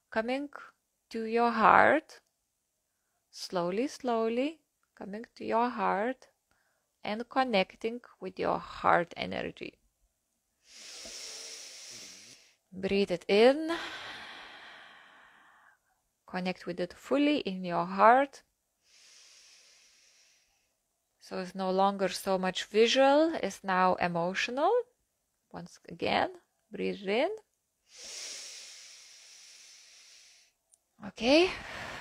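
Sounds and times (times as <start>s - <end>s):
woman breathing in: 10.6s - 12.6s, 13.7s - 15.8s, 18.8s - 20.8s, 27.9s - 30.6s, 31.5s - 32.0s.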